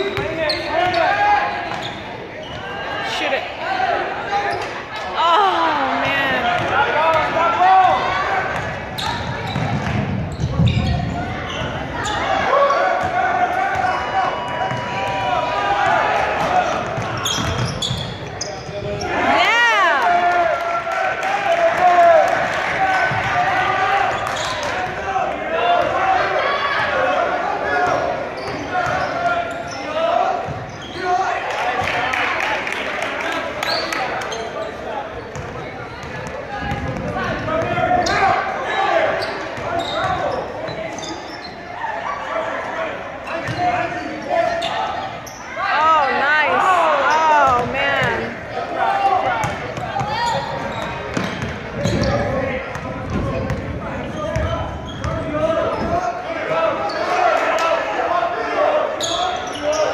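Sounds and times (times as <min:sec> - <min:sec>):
spectator chatter and calls: 0:00.0 - 0:59.9.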